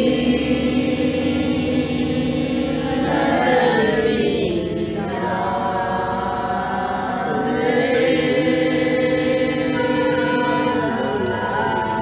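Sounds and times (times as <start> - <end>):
group singing devotional song: 0.0 - 12.0.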